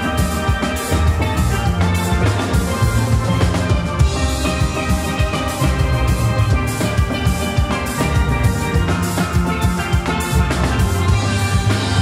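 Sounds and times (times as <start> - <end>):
drums keeping beat: 0.0 - 12.0
steel pans playing rhythm: 0.0 - 12.0.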